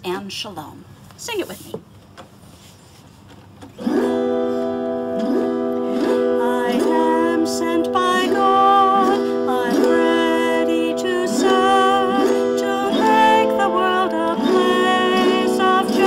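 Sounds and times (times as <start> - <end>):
autoharp strumming chords: 3.8 - 16.0
woman singing: 6.0 - 16.0.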